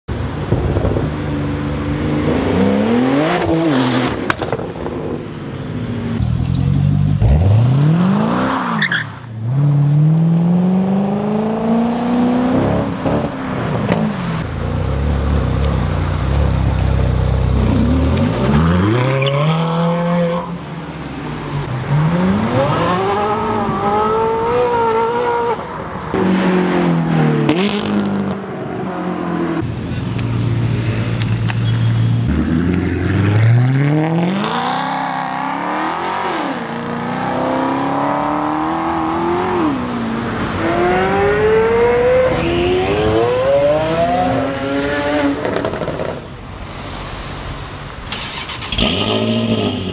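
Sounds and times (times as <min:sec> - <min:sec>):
sports car engines revving: 0:00.4 - 0:46.4, 0:48.2 - 0:49.9.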